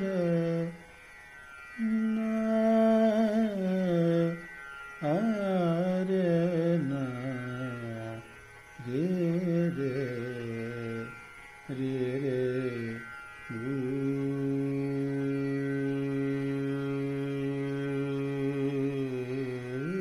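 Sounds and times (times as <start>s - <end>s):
man singing slow wavering phrases: 0.0s - 1.0s, 1.8s - 20.0s
steady drone: 0.0s - 20.0s.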